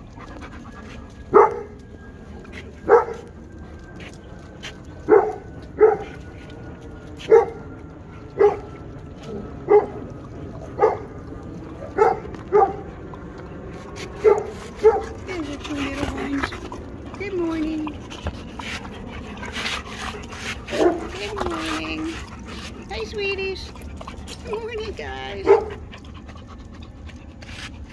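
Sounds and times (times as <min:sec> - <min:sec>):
dog bark: 0:01.3 - 0:01.7, 0:02.9 - 0:03.2, 0:05.1 - 0:06.0, 0:07.3 - 0:07.6, 0:08.4 - 0:08.6, 0:12.0 - 0:12.8, 0:25.4 - 0:25.8.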